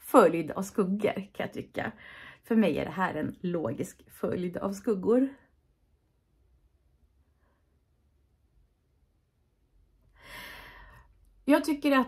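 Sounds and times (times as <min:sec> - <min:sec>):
woman breathing in: 0:02.0 - 0:02.4, 0:10.1 - 0:11.2.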